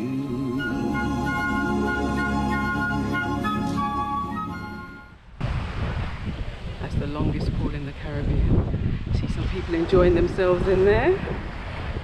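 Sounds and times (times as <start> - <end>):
instrumental music with flute melody: 0.0 - 5.2
wind on microphone: 5.1 - 12.0.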